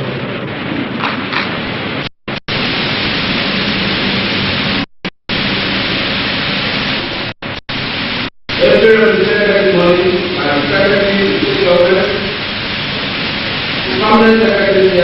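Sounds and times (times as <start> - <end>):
recording static hiss: 0.0 - 15.0.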